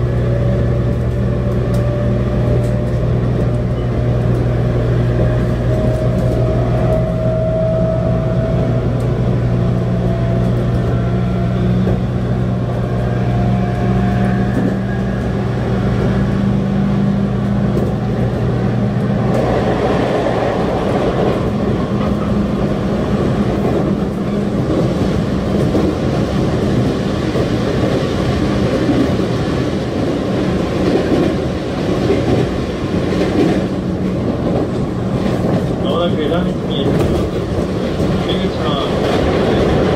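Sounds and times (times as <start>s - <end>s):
train wheels rumbling on rails: 0.0s - 39.9s.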